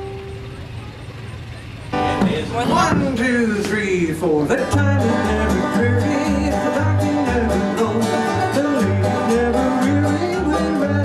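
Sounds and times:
low outdoor rumble: 0.0 - 11.0.

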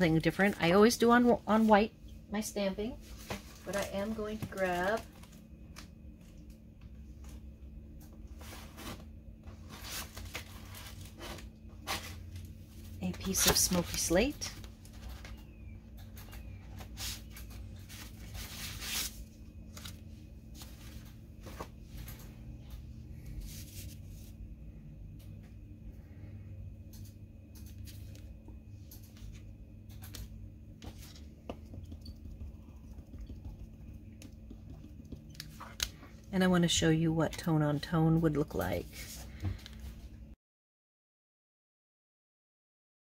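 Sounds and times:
faint low hum: 0.0 - 40.4.

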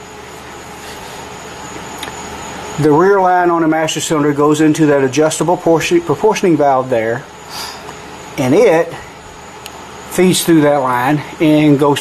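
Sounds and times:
room noise hiss: 0.0 - 12.0
man speaking: 2.8 - 7.3, 8.4 - 9.1, 10.1 - 12.0.

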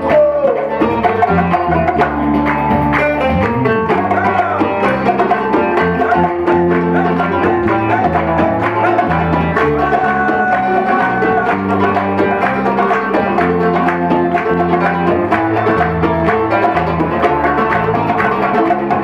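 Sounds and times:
live band playing folk-fusion: 0.0 - 19.0
hand drums steady beat: 0.6 - 19.0.

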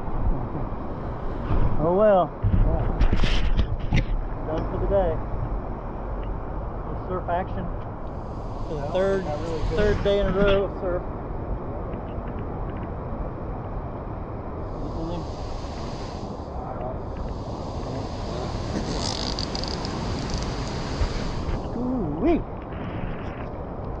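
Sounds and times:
wind rumbling on microphone: 0.0 - 24.0
ocean surf hissing: 0.6 - 2.0, 8.0 - 10.8, 14.6 - 22.0.

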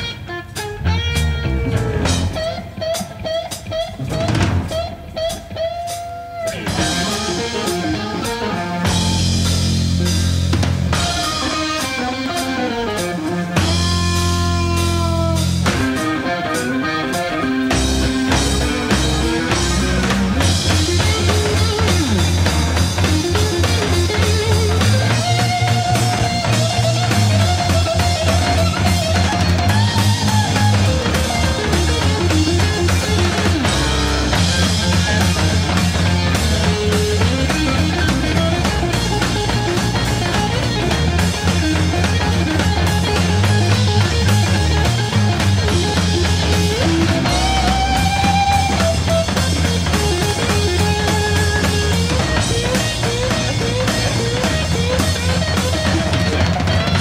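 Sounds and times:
bass and drums: 0.0 - 57.0
overdriven electric guitar lead: 0.0 - 57.0.

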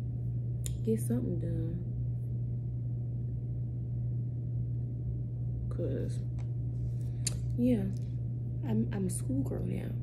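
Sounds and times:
low-pitched hum: 0.0 - 10.0.

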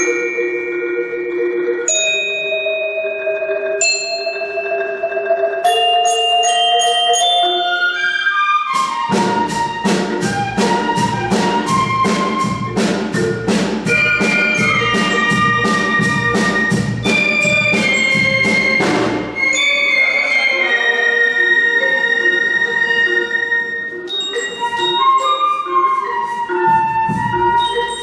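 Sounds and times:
marimba and glockenspiel chords: 0.0 - 8.0, 9.6 - 28.0
band playing with drum beat: 8.8 - 19.4, 26.4 - 28.0.

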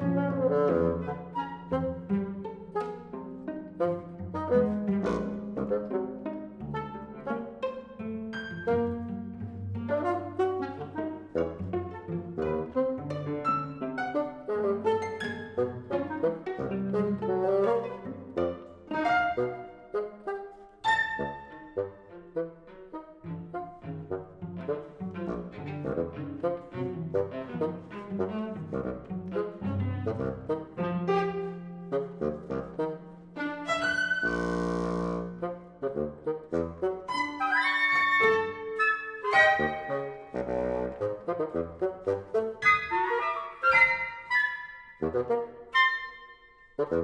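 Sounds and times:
bassoon with chamber ensemble: 0.0 - 47.0.

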